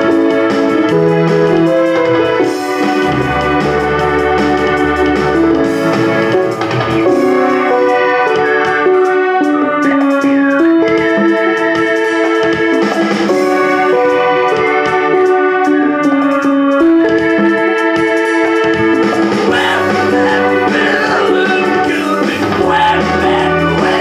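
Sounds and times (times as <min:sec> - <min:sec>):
electronic keyboard chords: 0:00.0 - 0:24.0
quick ticking beat: 0:19.0 - 0:24.0.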